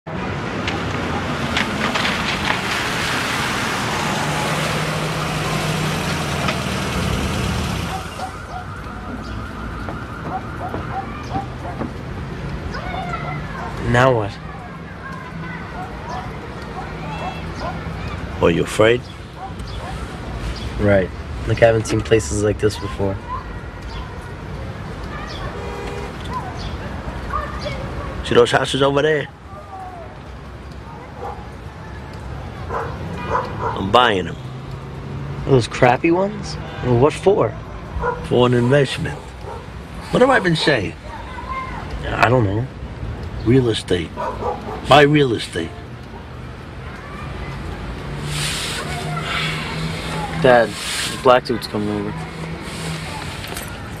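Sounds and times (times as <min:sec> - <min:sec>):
low traffic rumble: 0:00.0 - 0:54.0
vehicle engine hum: 0:00.1 - 0:14.0, 0:43.0 - 0:54.0
tyre hiss on wet street: 0:00.8 - 0:09.0, 0:11.5 - 0:54.0
dog barking faintly: 0:10.2 - 0:11.9, 0:30.9 - 0:31.5, 0:32.7 - 0:34.0, 0:44.2 - 0:45.0.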